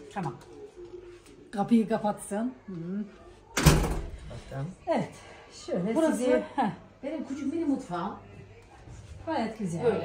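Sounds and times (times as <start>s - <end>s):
door slamming shut: 3.6s - 4.2s.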